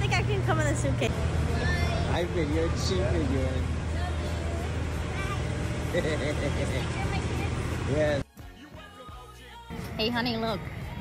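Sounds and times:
idling vehicle engines: 0.0s - 11.0s.

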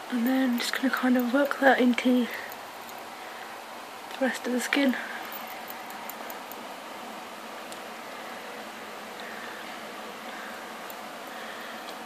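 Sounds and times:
steady background hiss: 0.0s - 12.0s.

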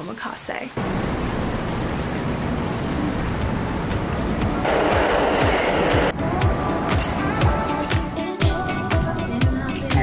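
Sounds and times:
subway train rushing past: 4.0s - 6.2s.

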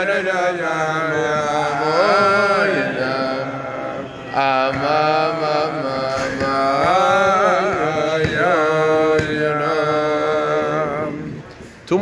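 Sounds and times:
person singing wordless melody: 0.0s - 11.5s.

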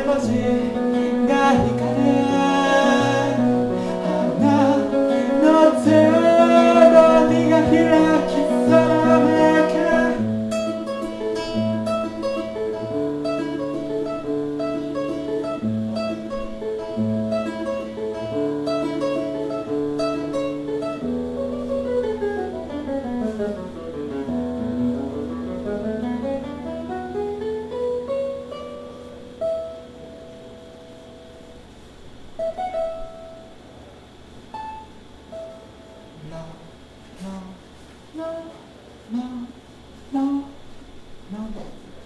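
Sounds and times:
classical guitar playing: 0.0s - 37.6s.

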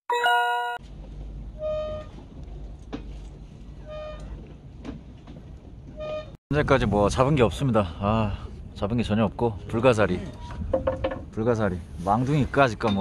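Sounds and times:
electronic chiming jingle: 0.1s - 0.8s
low outdoor rumble: 0.8s - 12.7s.

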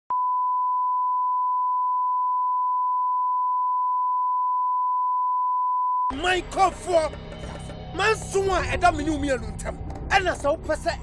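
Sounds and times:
steady test tone beep: 0.1s - 6.1s.

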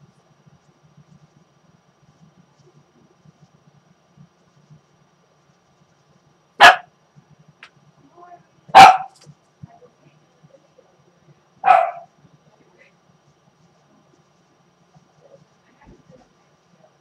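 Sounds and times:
faint low murmur: 0.0s - 17.0s
dog barking: 6.6s - 6.9s, 8.7s - 9.2s, 11.6s - 12.1s.

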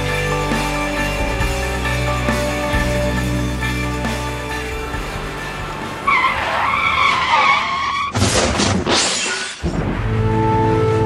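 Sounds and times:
music: 0.0s - 6.8s, 9.6s - 11.0s
tyres screeching: 6.0s - 8.6s.

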